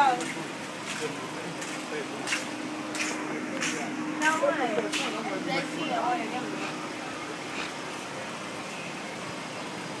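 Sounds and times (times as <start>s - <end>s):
car traffic hum: 0.0s - 10.0s.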